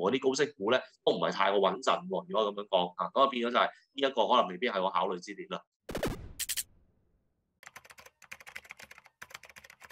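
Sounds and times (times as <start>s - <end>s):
computer keyboard typing: 7.6s - 9.9s.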